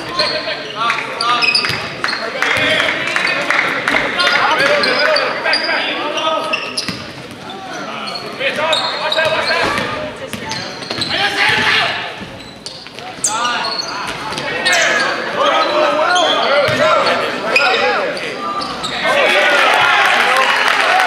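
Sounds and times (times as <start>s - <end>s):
sneakers squeaking: 0.0s - 3.5s, 4.2s - 19.2s.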